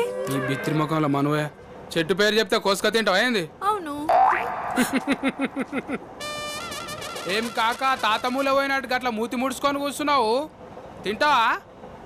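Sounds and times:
cartoon warbling tones: 4.1 - 4.9.

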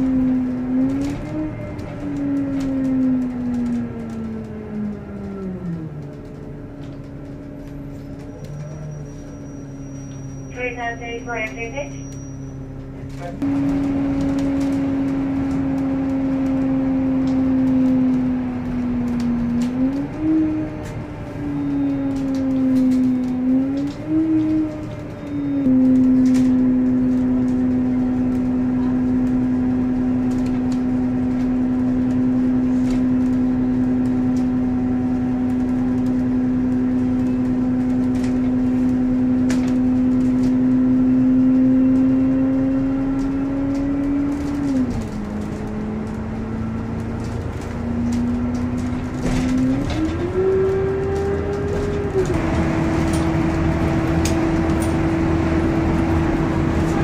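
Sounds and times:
bus engine humming: 0.0 - 57.0.

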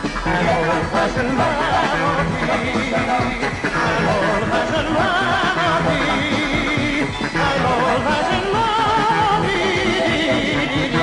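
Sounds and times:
band music: 0.0 - 11.0.

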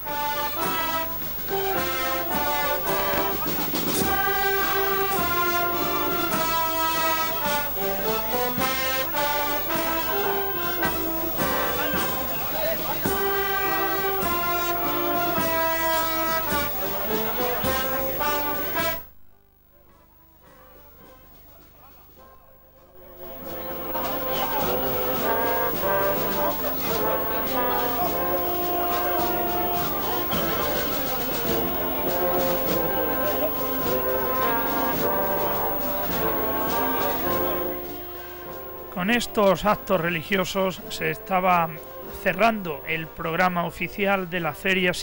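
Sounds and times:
brass band playing processional music: 0.0 - 19.1, 23.0 - 44.6.

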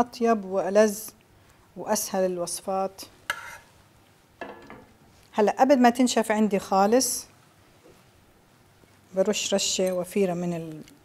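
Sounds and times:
spoon scraping bowl: 3.2 - 3.8.

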